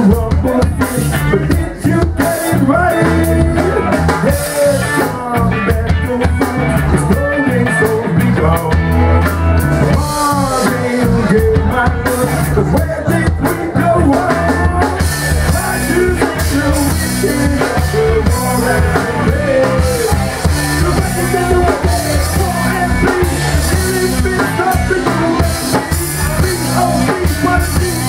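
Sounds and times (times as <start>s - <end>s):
bass guitar: 0.0s - 28.0s
drum kit beat: 0.0s - 28.0s
electric guitar: 0.0s - 28.0s
man singing: 0.0s - 28.0s.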